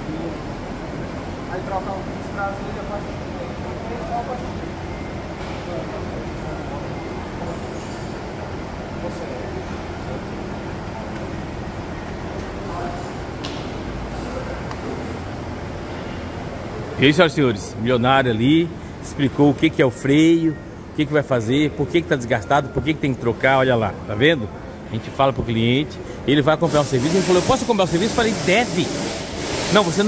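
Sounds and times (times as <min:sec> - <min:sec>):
workshop background hum: 0:00.0 - 0:30.0.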